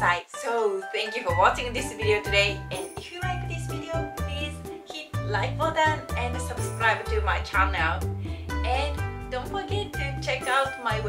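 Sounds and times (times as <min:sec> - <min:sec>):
woman speaking: 0:00.0 - 0:11.0
background music with bass line: 0:01.3 - 0:11.0.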